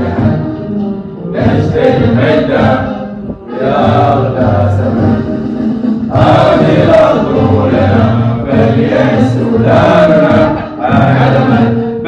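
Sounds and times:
male voices singing in unison: 1.2s - 12.0s.

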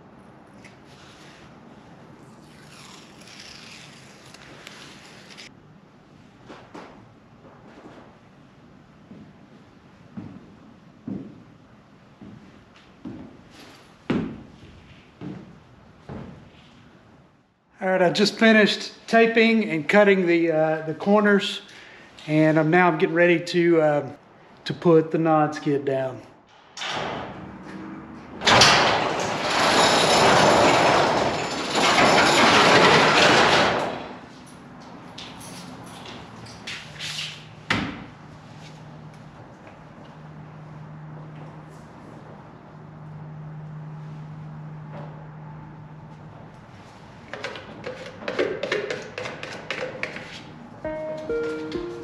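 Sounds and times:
steel roll-up door rattling: 28.4s - 34.3s.

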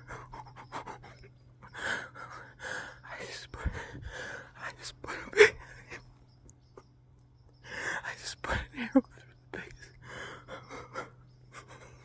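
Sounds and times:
man panting and gasping: 0.0s - 4.6s.

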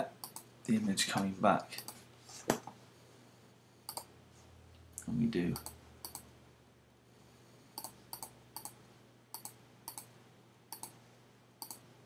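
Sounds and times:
computer mouse clicks: 0.2s - 0.5s, 3.9s - 4.1s, 5.6s - 6.3s, 7.8s - 10.1s, 10.7s - 11.0s, 11.6s - 11.8s.

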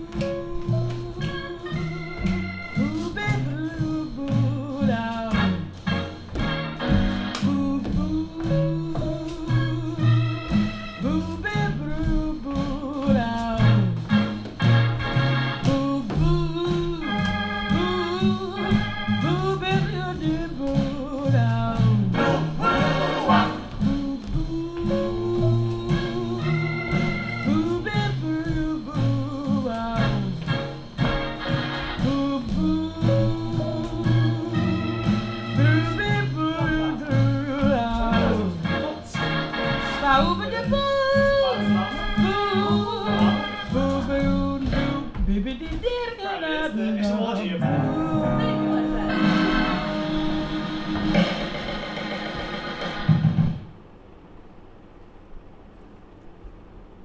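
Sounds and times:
swing jazz song with organ: 0.1s - 45.1s.

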